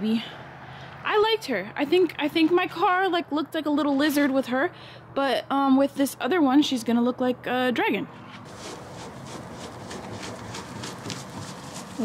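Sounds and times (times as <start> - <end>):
cloth scrubbing car paint: 8.4 - 12.0.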